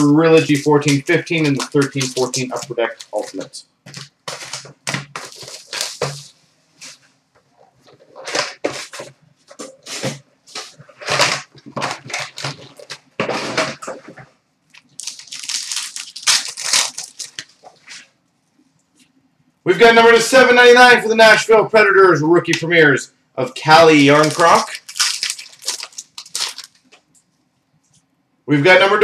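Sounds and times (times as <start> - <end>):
card pack wrappers tearing: 0.4 - 6.2, 14.7 - 17.6, 23.8 - 27.0.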